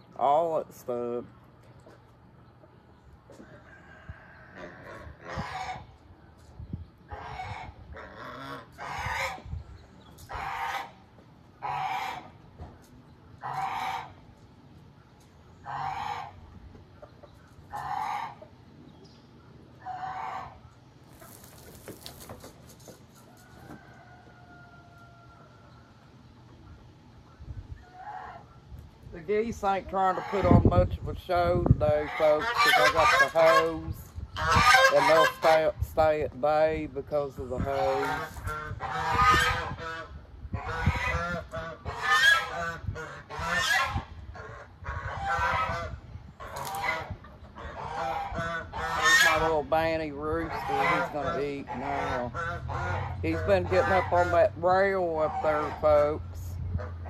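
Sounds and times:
chickens squawking: 0:00.0 - 0:01.2, 0:01.8 - 0:57.0.

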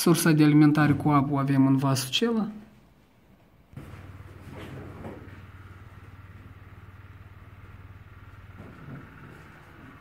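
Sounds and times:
low steady hum: 0:02.5 - 0:10.0.

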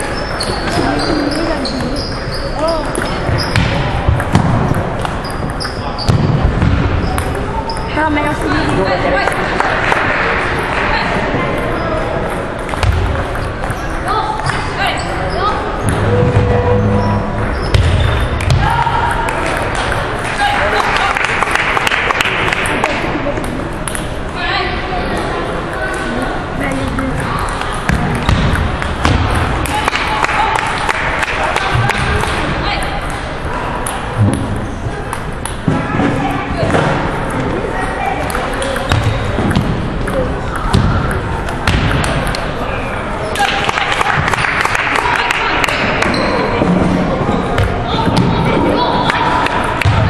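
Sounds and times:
murmur of voices: 0:00.0 - 0:50.0
table tennis balls clicking: 0:02.8 - 0:05.9, 0:38.2 - 0:42.6.

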